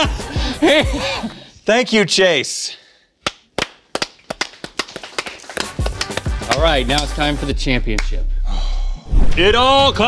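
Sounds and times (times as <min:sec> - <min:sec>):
people clapping: 0:03.2 - 0:07.4.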